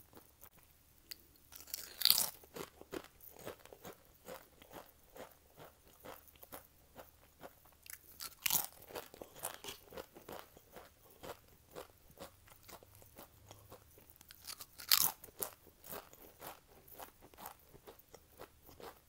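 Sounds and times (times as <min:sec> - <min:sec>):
potato chips crunching: 0:01.1 - 0:19.0.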